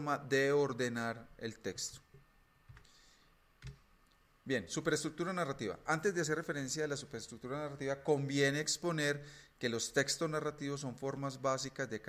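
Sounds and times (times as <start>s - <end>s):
computer mouse clicking: 2.7s - 2.9s, 3.6s - 4.2s.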